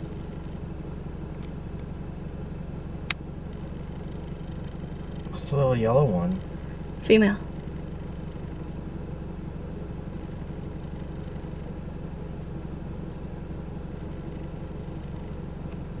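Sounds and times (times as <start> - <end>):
vehicle engine idling hum: 0.0 - 16.0.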